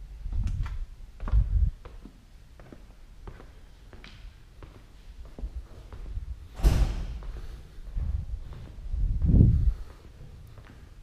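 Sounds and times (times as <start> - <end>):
dull low thumps: 0.0 - 1.9, 5.4 - 10.7.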